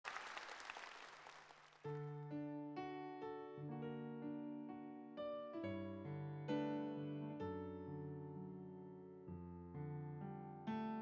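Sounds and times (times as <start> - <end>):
audience applause: 0.0 - 2.0
piano chord: 1.9 - 11.0.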